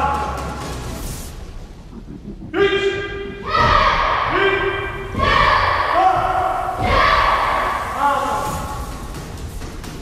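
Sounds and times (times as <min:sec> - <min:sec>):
group shouting together: 0:03.4 - 0:08.4.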